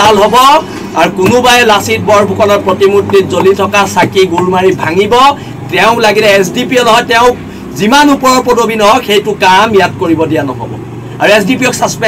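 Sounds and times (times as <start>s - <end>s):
low background hum: 0.0s - 12.0s
man speaking into microphones: 0.0s - 12.0s.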